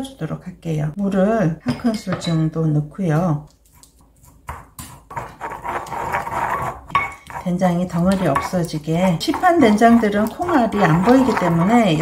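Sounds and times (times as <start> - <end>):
pestle grinding in a mortar: 3.7 - 12.0.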